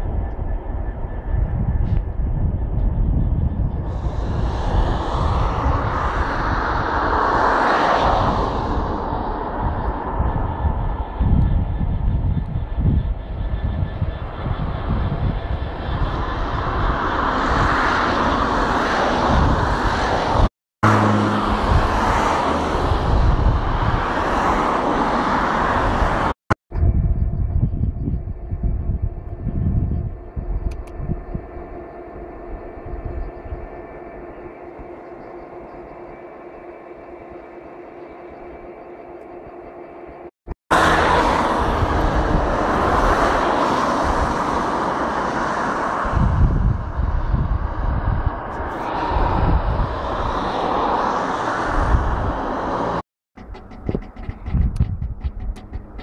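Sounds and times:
wind buffeting microphone: 0.0s - 36.4s, 40.7s - 56.0s
diesel locomotive engine: 0.0s - 56.0s
steady hum: 26.8s - 40.3s.

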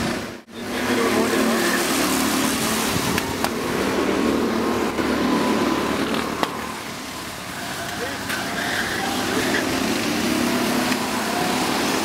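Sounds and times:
go-kart engines running: 0.0s - 12.0s
people's voices: 7.5s - 12.0s.

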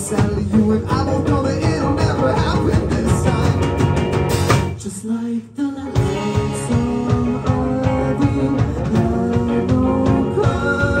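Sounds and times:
live rock band playing: 0.0s - 5.0s, 5.8s - 11.0s.

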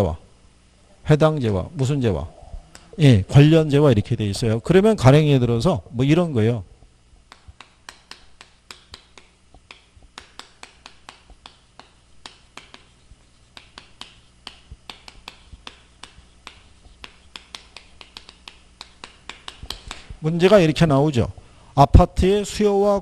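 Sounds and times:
chalk tapping and scratching: 7.3s - 20.2s.

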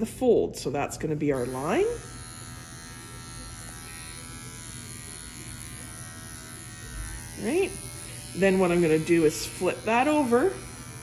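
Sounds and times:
electric clippers humming: 0.7s - 11.0s.

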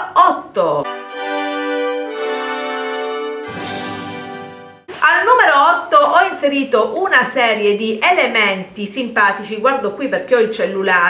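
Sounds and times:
musical jingle chords: 0.8s - 4.9s.

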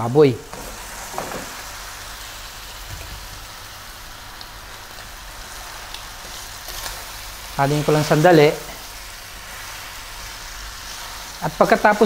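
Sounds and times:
meat sizzling in a pan: 0.2s - 12.0s.

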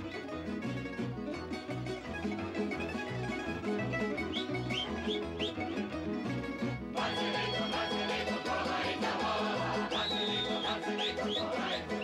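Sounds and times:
fiddle: 0.0s - 12.0s
plucked strings: 0.0s - 12.0s.

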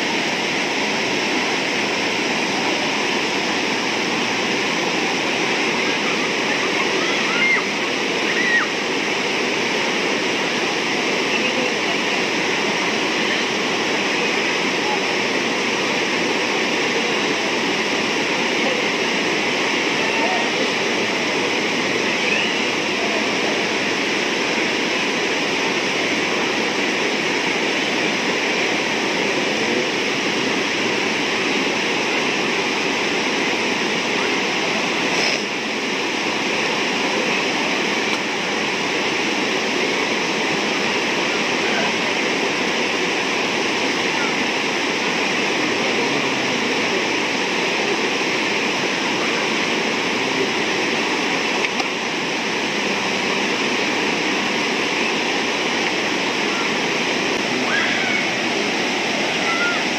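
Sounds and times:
river rapids rushing: 0.0s - 59.9s.

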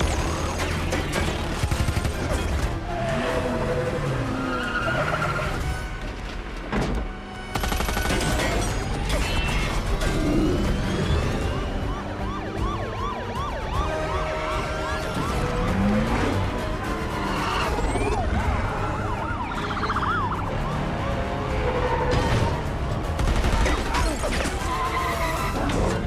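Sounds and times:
police sirens wailing and yelping: 0.0s - 5.8s, 8.0s - 26.0s
vehicle noise: 0.0s - 7.9s, 8.6s - 26.0s.

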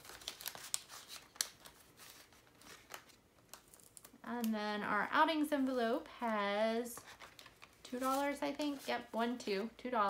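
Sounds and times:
plastic envelopes rustling: 0.0s - 4.2s, 5.5s - 9.7s.

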